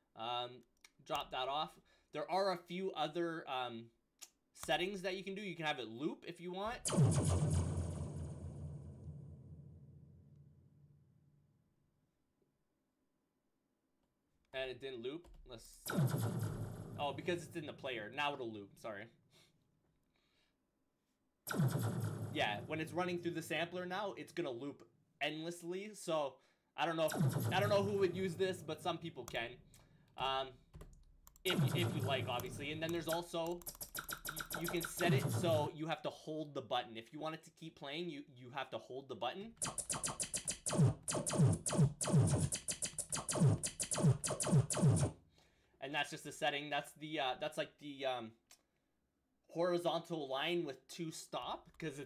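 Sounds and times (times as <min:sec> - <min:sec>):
laser blaster zap: 0:06.9 - 0:08.4, 0:21.5 - 0:22.6, 0:27.1 - 0:28.6, 0:31.5 - 0:35.7, 0:39.6 - 0:45.1.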